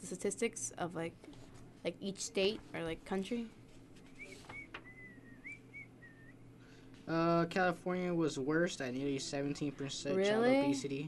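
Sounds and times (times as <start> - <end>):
low steady hum: 0.0 - 11.0
faint whistling: 4.1 - 6.5.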